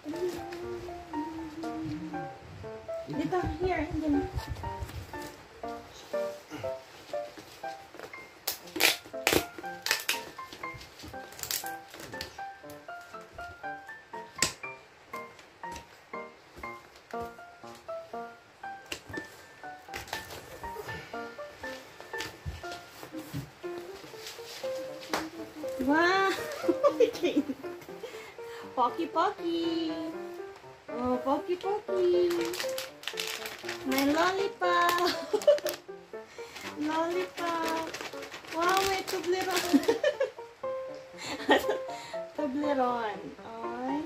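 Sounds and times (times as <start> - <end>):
plucked background music: 0.0 - 44.0
scissors cutting packing tape: 8.4 - 10.4, 11.2 - 12.3, 32.3 - 34.2, 36.6 - 40.0.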